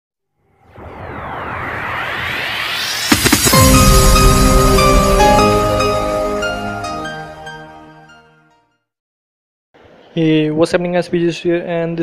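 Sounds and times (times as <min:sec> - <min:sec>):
whoosh with sweeping tones: 0:00.5 - 0:07.6.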